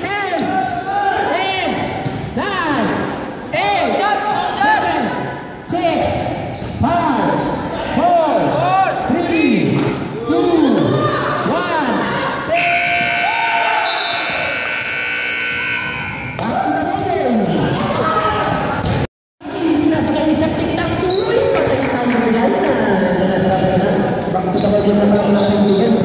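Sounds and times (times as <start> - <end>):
sneakers squeaking on hardwood: 6.5 - 6.9, 24.5 - 26.0
scoreboard buzzer: 12.6 - 16.2.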